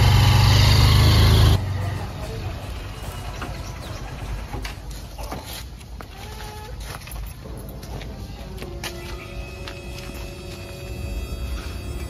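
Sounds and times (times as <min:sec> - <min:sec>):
motorcycle engine pulling away: 0:00.0 - 0:04.7.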